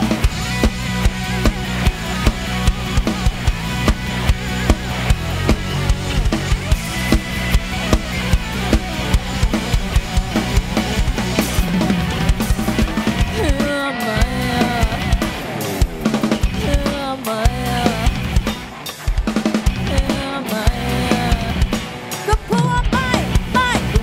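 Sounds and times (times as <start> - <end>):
drum kit beat: 0.0 - 24.0
electric bass: 0.0 - 24.0
electric guitar: 0.0 - 24.0.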